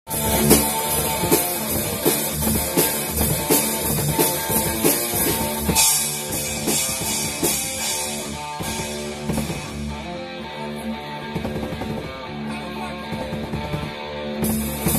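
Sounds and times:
drum kit: 0.1 - 14.9
electric guitar lead: 0.1 - 14.9.

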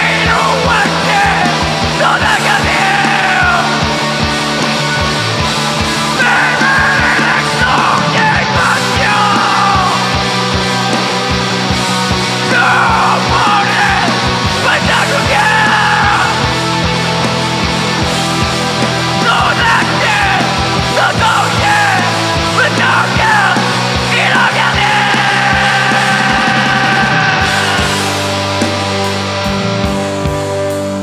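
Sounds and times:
screamed vocals: 0.0 - 3.8, 6.2 - 10.1, 12.4 - 16.4, 19.2 - 28.2
bass guitar: 0.0 - 31.0
distorted electric guitars: 0.0 - 31.0
pounding drums and cymbals: 0.0 - 31.0.

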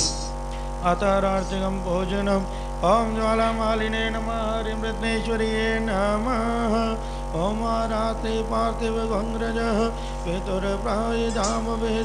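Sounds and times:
low hum: 0.0 - 12.0
person chanting a melody: 0.8 - 12.0.

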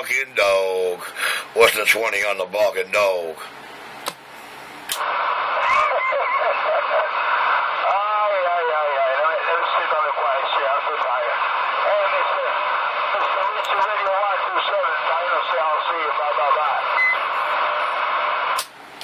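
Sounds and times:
radio static hiss: 5.0 - 18.6
garbled voices over radio: 5.5 - 6.8, 7.8 - 17.0.

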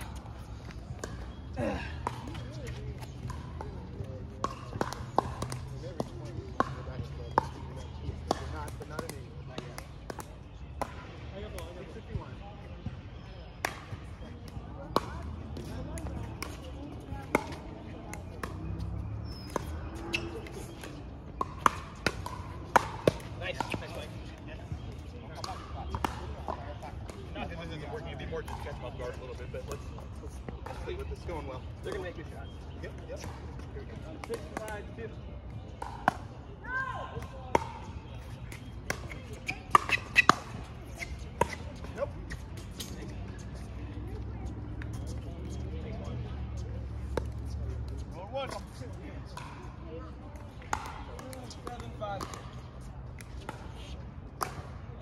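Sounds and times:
ball bouncing on court: 0.0 - 1.4, 2.0 - 12.3, 13.6 - 27.4, 35.7 - 46.2, 50.4 - 52.6
paddles popping against ball: 4.4 - 10.9.

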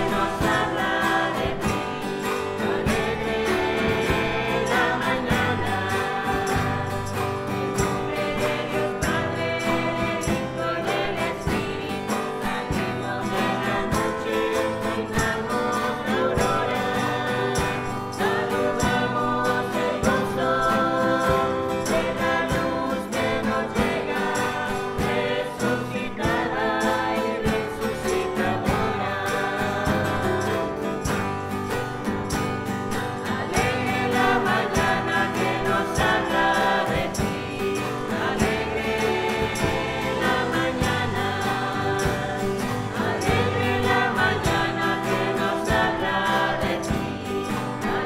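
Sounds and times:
group singing a hymn: 0.0 - 48.0
instrumental accompaniment with beat: 0.0 - 48.0.

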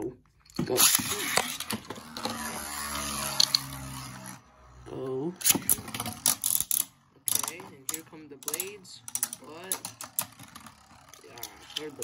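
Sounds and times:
spinning top whirring on plastic: 0.5 - 12.0.

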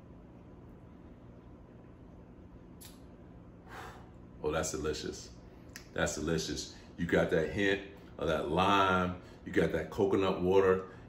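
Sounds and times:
man breathing: 3.6 - 4.3.

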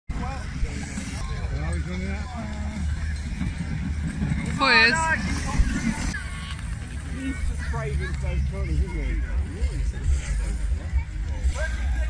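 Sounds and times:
spectators talking and calling out: 0.1 - 12.0.

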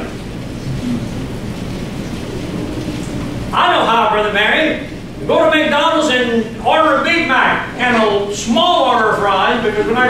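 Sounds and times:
low rumble of room noise: 0.0 - 10.0.

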